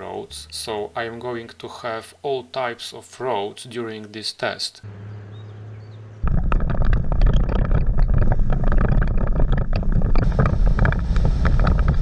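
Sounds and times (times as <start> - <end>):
vehicle rumble on road: 4.8 - 12.0
wind buffeting microphone: 5.4 - 12.0.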